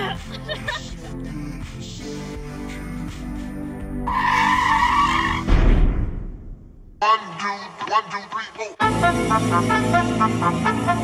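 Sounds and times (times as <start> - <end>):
deep crash: 5.4 - 7.0
hip hop track: 7.0 - 11.0.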